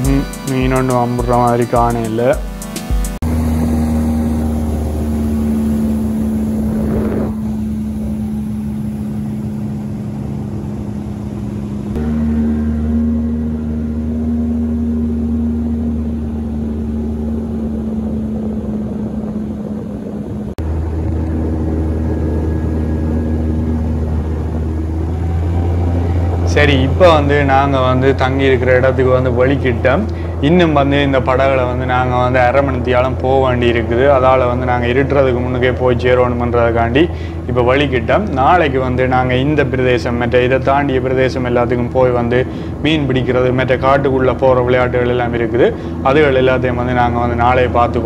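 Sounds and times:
outboard motor running: 0.0s - 48.0s
water rushing past hull: 3.2s - 48.0s.

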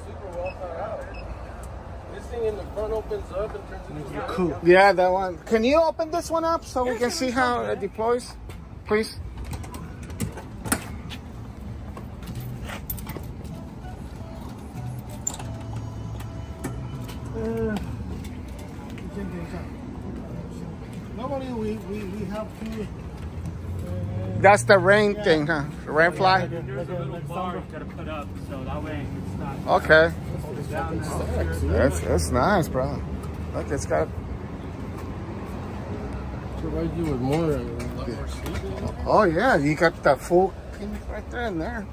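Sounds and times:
road traffic rumble: 0.0s - 41.9s.

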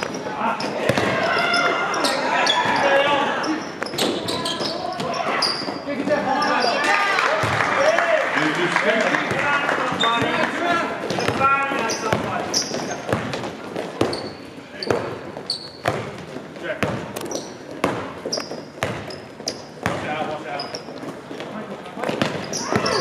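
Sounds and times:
sneaker squeaks: 0.0s - 6.9s, 9.9s - 10.4s, 11.0s - 23.0s
players calling out: 0.0s - 16.1s, 22.0s - 23.0s
basketball bouncing on wood floor: 11.0s - 15.2s, 15.8s - 20.1s.

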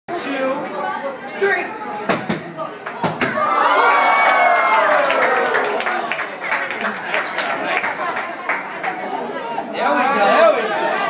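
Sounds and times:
children chattering: 0.1s - 2.8s
children cheering: 3.4s - 6.5s.

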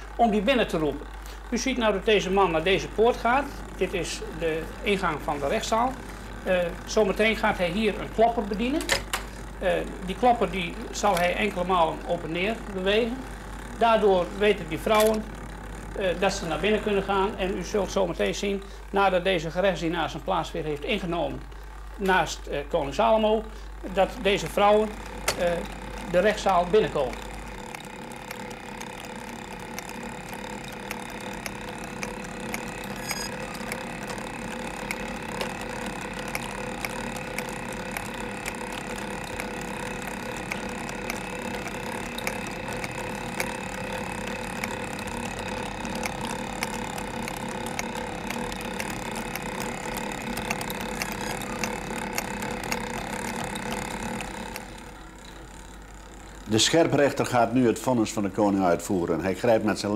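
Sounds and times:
small mechanical clicks: 0.0s - 58.7s
mechanical automaton whirring: 2.2s - 17.3s, 24.1s - 57.6s.

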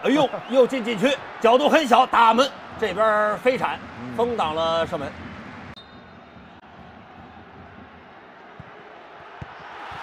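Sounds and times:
murmur of stadium crowd: 0.0s - 10.0s.

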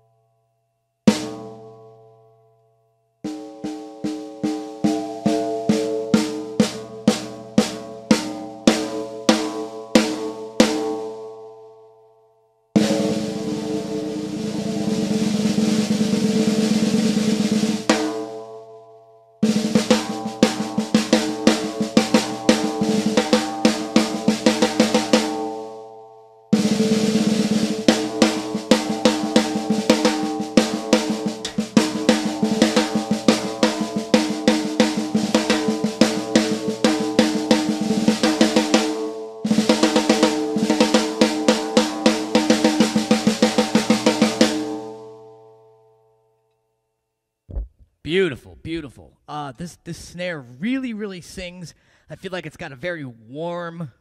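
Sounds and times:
ringing drum head overtones: 1.0s - 2.5s, 3.2s - 12.0s, 12.7s - 45.9s
snare drum strokes and rolls: 12.8s - 18.2s, 19.4s - 25.3s, 26.6s - 44.9s.

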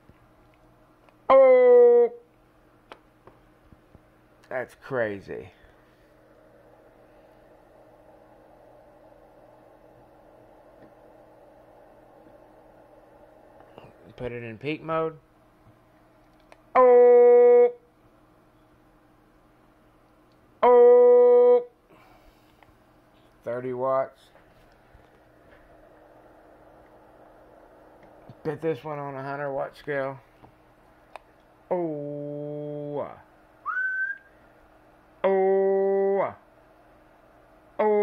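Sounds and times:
faint low electrical hum: 0.0s - 38.0s
person saying oh: 1.3s - 2.3s, 16.8s - 17.8s, 20.6s - 21.7s, 35.2s - 36.4s, 37.8s - 38.0s
loud buzzy tone: 16.7s - 17.9s
short rising whistle: 33.6s - 34.4s.

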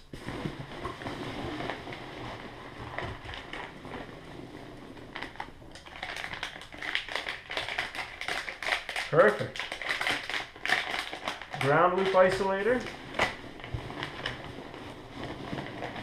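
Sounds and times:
hands rummaging in packing peanuts: 0.0s - 16.0s
plastic wrapping crinkling: 0.0s - 16.0s.

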